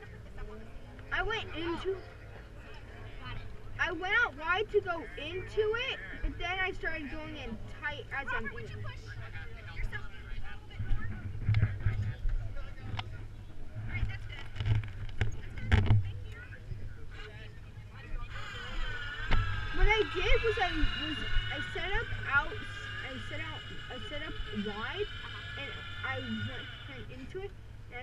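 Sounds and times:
high multi-tone whine: 0.0 - 28.0
indistinct voices talking: 0.0 - 28.0
wind rumbling on microphone: 9.5 - 17.1.

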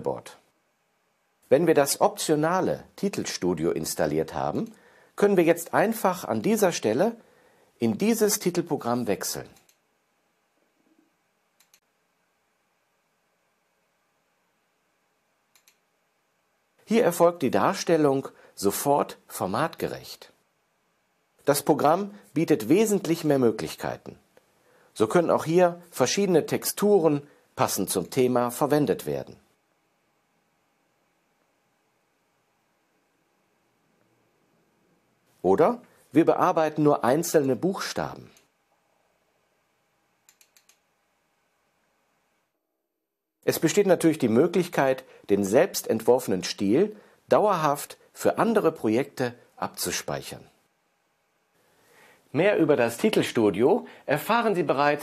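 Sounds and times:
computer mouse clicks: 9.6 - 9.8, 11.6 - 11.9, 15.5 - 15.8, 40.2 - 40.9.

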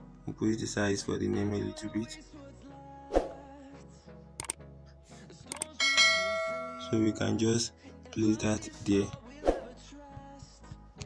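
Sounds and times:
double click: 4.4 - 4.6
bright bell ding: 5.8 - 7.6.

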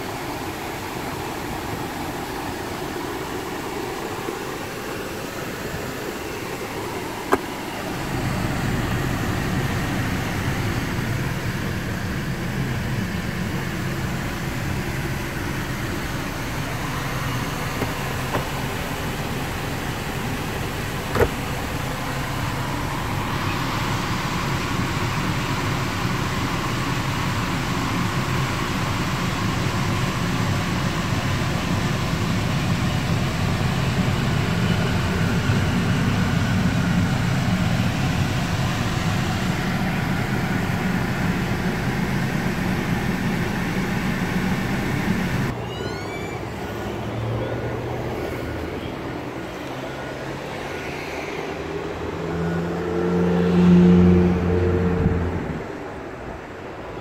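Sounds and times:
car engine hum: 0.0 - 57.0
rushing noise in car cabin: 0.0 - 57.0.

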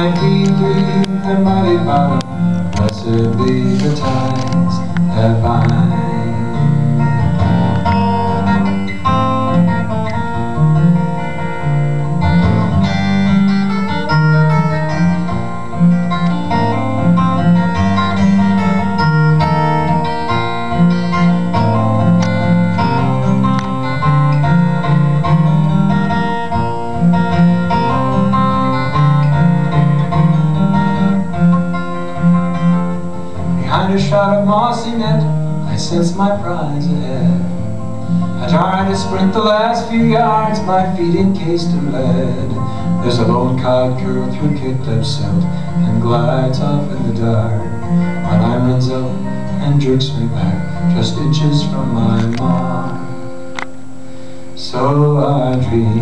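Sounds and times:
solo acoustic guitar: 0.0 - 56.0.

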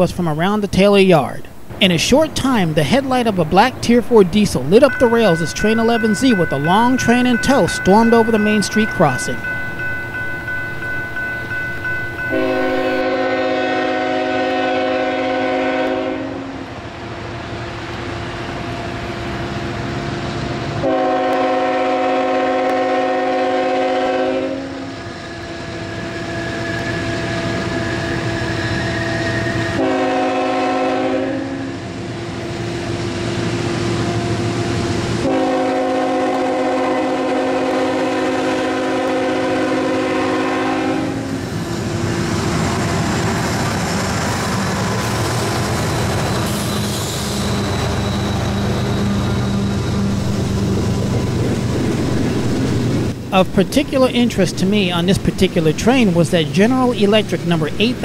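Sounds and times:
locomotive engine rumbling: 0.0 - 58.0
locomotive air horn: 12.3 - 16.6, 20.8 - 25.0, 29.2 - 31.8, 35.2 - 41.4.

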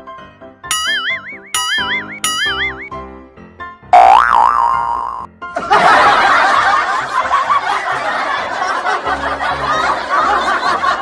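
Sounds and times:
cartoon boing sound effects: 0.7 - 2.9, 4.0 - 5.3.

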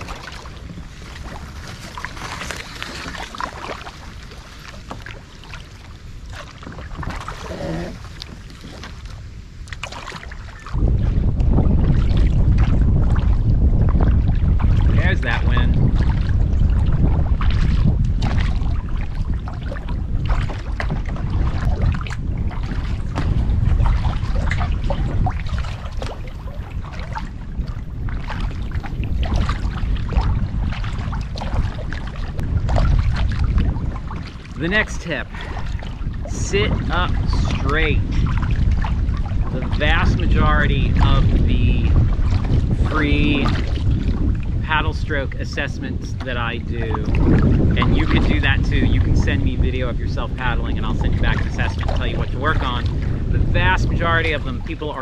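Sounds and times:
paddle strokes splashing water: 0.0 - 55.0
wind buffeting microphone: 0.0 - 55.0.

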